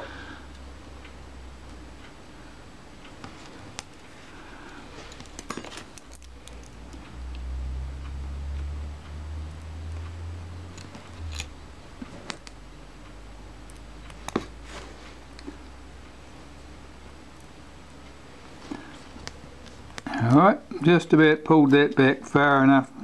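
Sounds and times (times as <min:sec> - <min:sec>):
metal tools clicking and scraping: 0:05.0 - 0:07.0, 0:10.7 - 0:12.5.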